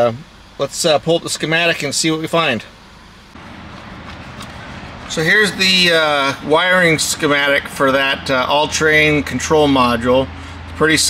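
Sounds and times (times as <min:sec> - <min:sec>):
faint hum with hiss: 0:00.0 - 0:11.0.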